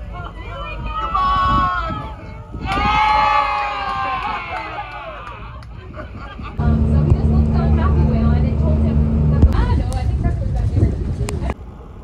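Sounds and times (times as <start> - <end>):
boat engine drone: 6.6 - 10.5.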